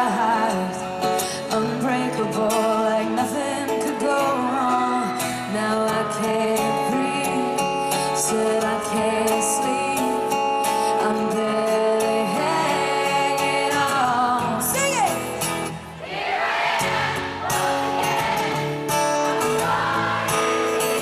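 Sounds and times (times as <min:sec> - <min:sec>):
woman singing: 0:00.0 - 0:15.4
strummed acoustic guitar: 0:00.0 - 0:21.0.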